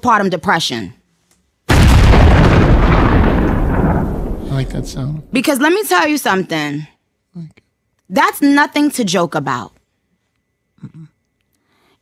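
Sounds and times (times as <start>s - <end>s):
explosion sound effect: 1.7s - 5.4s
low rumble: 1.7s - 5.4s.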